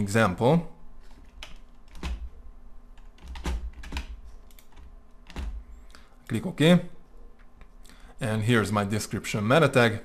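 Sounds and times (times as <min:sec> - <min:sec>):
faint low hum: 0:00.0 - 0:10.0
computer keyboard clicks: 0:01.2 - 0:02.3, 0:03.0 - 0:05.6.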